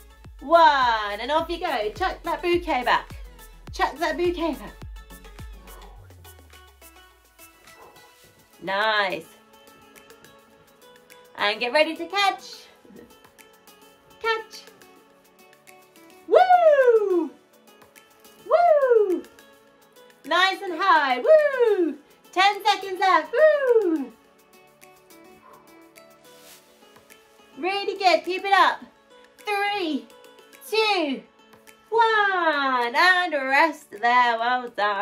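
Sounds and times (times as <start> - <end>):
background music: 0.0 - 35.0
woman whooping: 16.2 - 17.4, 18.4 - 19.4, 21.2 - 22.0, 23.1 - 24.2
woman vocalising wordless notes: 16.2 - 17.6, 18.4 - 19.4, 20.3 - 24.2.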